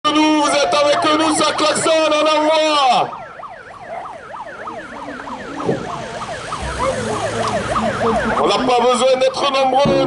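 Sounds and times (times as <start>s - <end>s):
warbling siren-like whistling: 0.4s - 9.7s.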